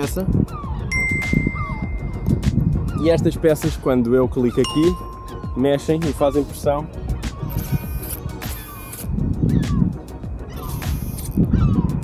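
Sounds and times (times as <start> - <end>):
background music with low beat: 0.0 - 12.0
high bell-like ding: 0.9 - 2.4, 4.6 - 5.9.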